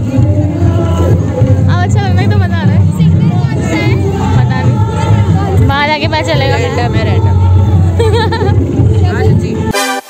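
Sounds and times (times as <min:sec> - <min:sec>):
crowd noise: 0:00.0 - 0:10.0
keyboard music: 0:02.4 - 0:10.0
loud live concert music: 0:07.6 - 0:10.0.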